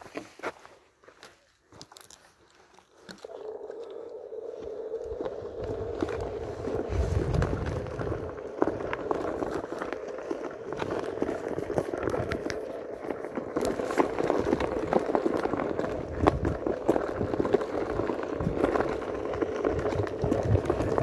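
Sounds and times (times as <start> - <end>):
small crackles and knocks: 1.2 - 21.0
tyre rumbling on trail: 3.0 - 21.0.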